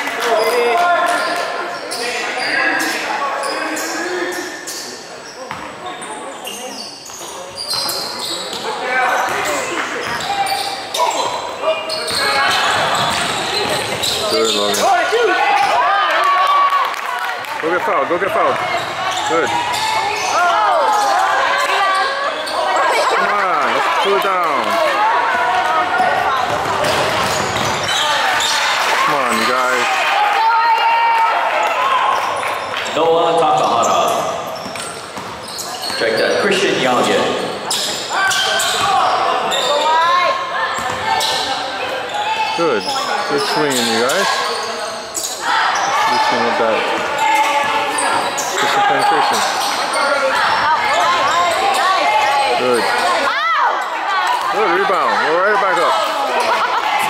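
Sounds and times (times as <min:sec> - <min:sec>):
voices echoing: 0:00.0 - 0:57.0
sneakers squeaking: 0:00.2 - 0:16.6, 0:18.2 - 0:29.8, 0:31.5 - 0:57.0.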